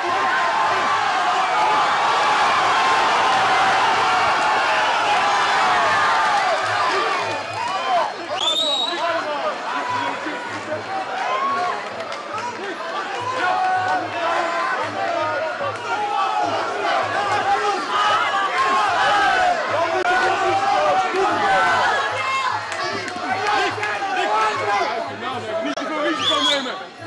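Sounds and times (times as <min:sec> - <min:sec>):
crowd shouting and yelling: 0:00.0 - 0:27.0.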